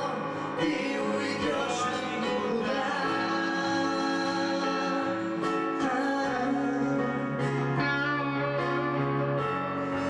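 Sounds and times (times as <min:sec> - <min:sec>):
acoustic guitar: 0:00.0 - 0:10.0
electric guitar: 0:00.0 - 0:10.0
keyboards: 0:00.0 - 0:10.0.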